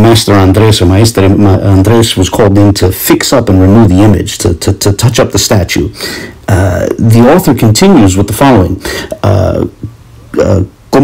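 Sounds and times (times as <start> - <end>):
man saying uh: 0.0 - 11.0.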